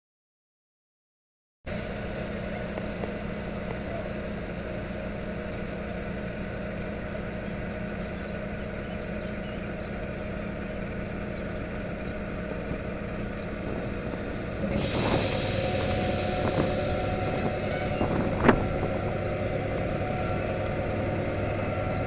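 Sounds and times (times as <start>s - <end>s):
diesel locomotive engine drone: 1.7s - 22.0s.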